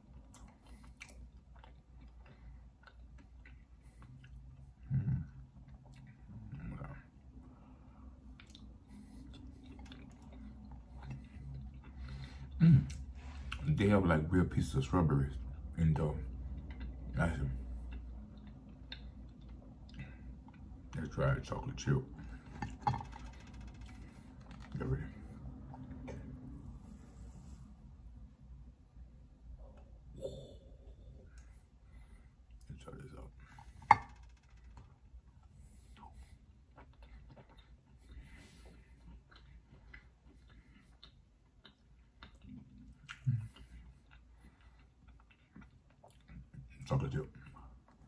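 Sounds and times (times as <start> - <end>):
person chewing cookie: 0.0 - 13.8, 14.8 - 27.6, 33.4 - 48.0
closed-mouth hum: 0.0 - 45.4.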